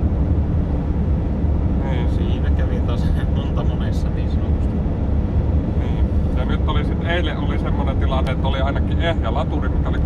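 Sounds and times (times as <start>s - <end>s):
van engine and road noise: 0.0s - 10.0s.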